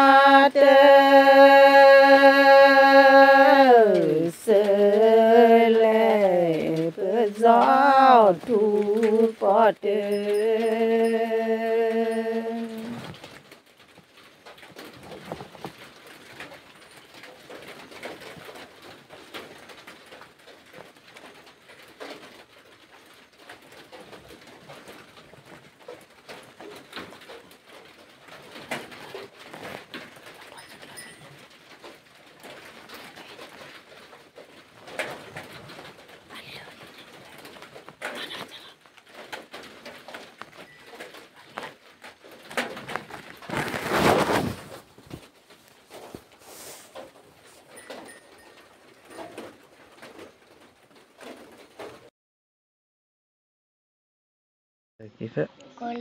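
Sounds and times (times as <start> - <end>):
scattered small noises: 0.0 - 52.1
person singing held note: 10.0 - 13.1.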